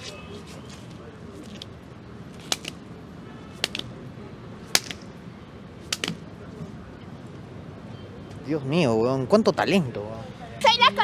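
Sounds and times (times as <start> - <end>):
hands slapping on pavement: 2.4 - 2.8, 3.5 - 4.0, 4.7 - 5.1, 5.8 - 6.3.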